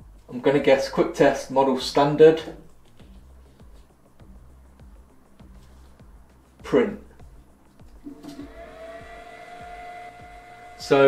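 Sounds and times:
soft background music: 0:00.0 - 0:11.0
printer motor whine: 0:08.1 - 0:11.0.

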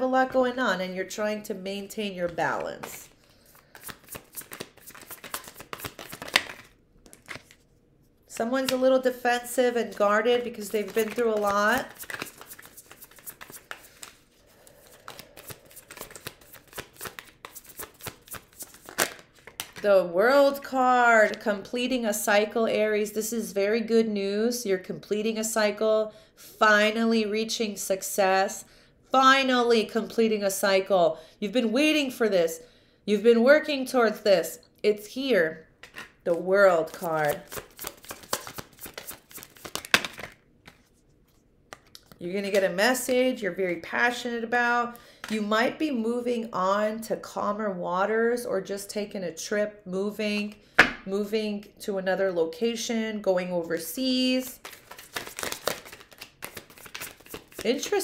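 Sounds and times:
cards being shuffled: 0:02.6 - 0:07.8, 0:10.4 - 0:19.8, 0:35.8 - 0:42.6, 0:54.6 - 0:58.0.

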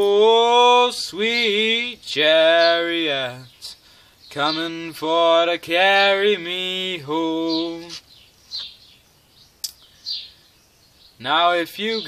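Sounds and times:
small bird chirping: 0:01.2 - 0:04.9, 0:06.1 - 0:12.0
sharp click: 0:09.6 - 0:09.8.

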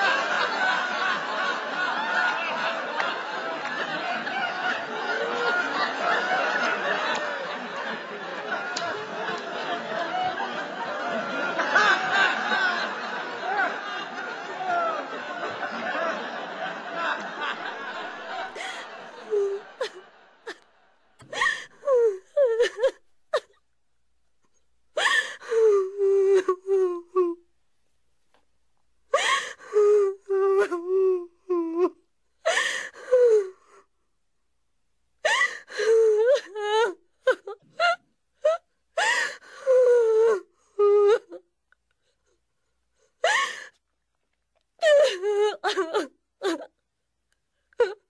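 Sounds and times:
person sobbing and wailing: 0:18.5 - 0:20.6, 0:21.3 - 0:23.5, 0:25.0 - 0:27.4, 0:29.2 - 0:33.8, 0:35.3 - 0:41.5, 0:44.8 - 0:46.8
person gasping and crying: 0:21.2 - 0:22.8, 0:25.0 - 0:27.4.

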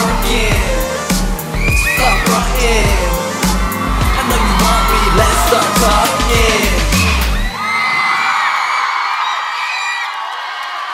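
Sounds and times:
pop backing track with heavy bass: 0:00.0 - 0:07.6
audience screaming and cheering: 0:00.0 - 0:10.9.

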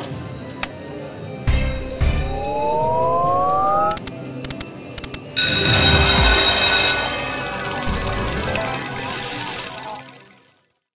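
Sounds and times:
rising electronic tone: 0:02.0 - 0:04.1, 0:05.4 - 0:10.6
coins clattering: 0:05.4 - 0:10.6
ringing jackpot jingle: 0:05.4 - 0:10.6.

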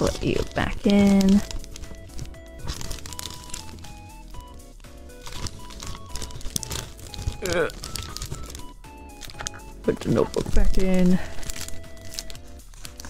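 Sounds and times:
paper and envelope rustling: 0:00.0 - 0:13.0
soft background music: 0:00.0 - 0:13.0.

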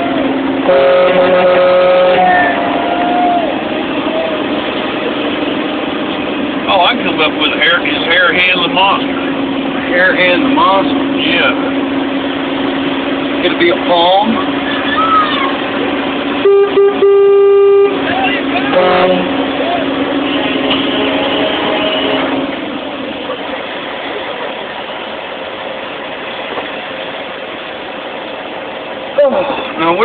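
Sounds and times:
truck engine running: 0:00.0 - 0:30.0
vehicle horn: 0:00.6 - 0:02.6, 0:16.4 - 0:22.6.

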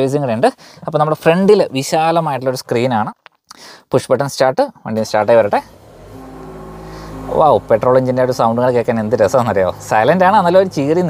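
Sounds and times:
car engine starting and idling: 0:05.0 - 0:11.0.

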